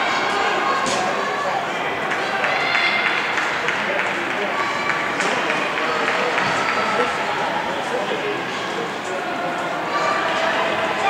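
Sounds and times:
crowd shouting and cheering: 0.0s - 11.0s.

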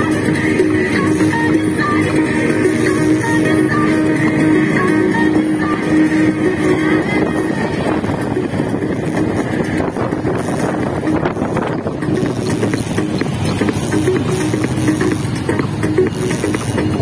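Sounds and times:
guitar music: 0.0s - 17.0s
motorcycle engine: 0.0s - 17.0s
road noise: 0.0s - 17.0s.

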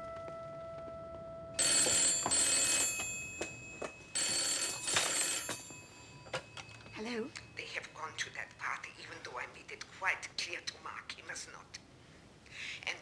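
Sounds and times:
telephone bell ringing: 1.6s - 8.2s.

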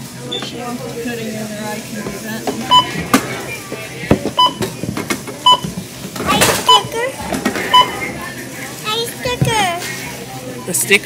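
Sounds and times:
barcode scanner beeping: 5.4s - 5.7s, 6.4s - 7.0s, 7.7s - 8.0s.

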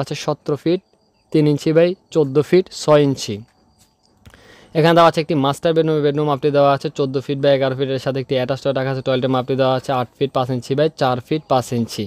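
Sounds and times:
man speaking: 0.0s - 3.5s, 4.7s - 12.0s.

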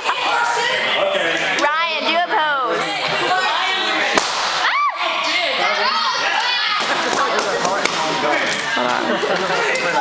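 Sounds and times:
crowd chatter: 0.0s - 10.0s
balloon bursting: 4.1s - 4.7s.

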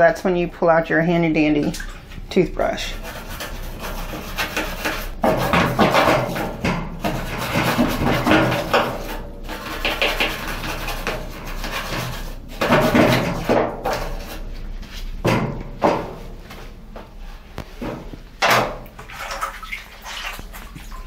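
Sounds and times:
toothbrush scrubbing plastic: 2.8s - 5.5s, 7.0s - 12.8s.

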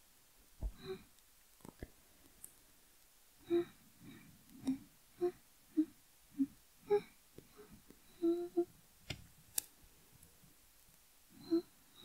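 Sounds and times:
woman humming: 4.6s - 8.7s, 11.4s - 11.8s.

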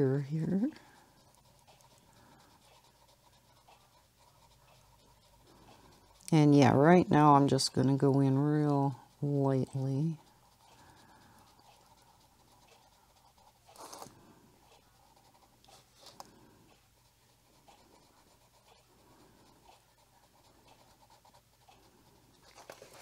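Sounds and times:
colored pencil scratching on paper: 0.0s - 23.0s.

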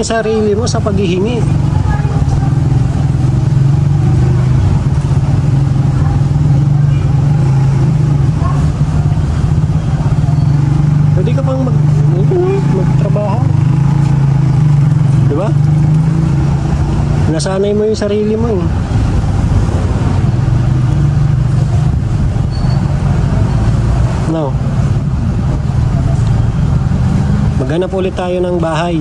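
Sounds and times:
faint voices: 0.0s - 13.6s
vehicle engine idling: 0.0s - 29.0s.

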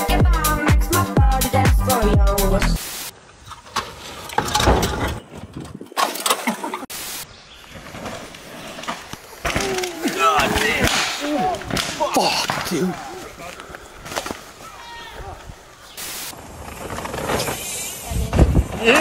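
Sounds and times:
dance music: 0.0s - 2.8s
mountain bike rolling on dirt: 7.5s - 10.8s, 13.1s - 19.0s.

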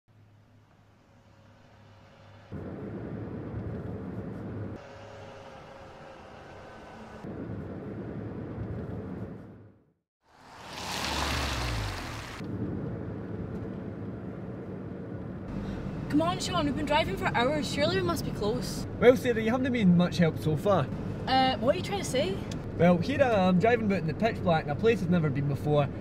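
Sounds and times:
car driving on wet road: 10.2s - 15.0s
loud rumble and rush: 10.3s - 19.5s.

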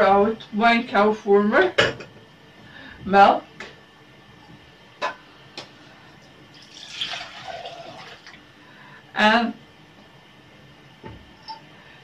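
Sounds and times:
milk pouring into plastic bowl: 6.5s - 8.4s.

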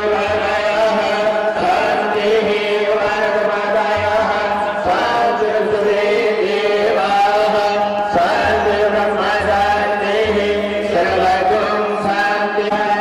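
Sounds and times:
men chanting long held notes: 0.0s - 13.0s.

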